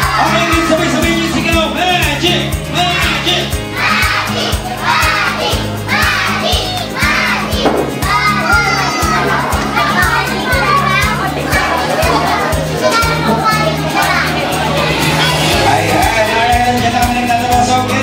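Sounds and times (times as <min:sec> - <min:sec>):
children shouting: 0:00.0 - 0:01.4, 0:02.7 - 0:16.6.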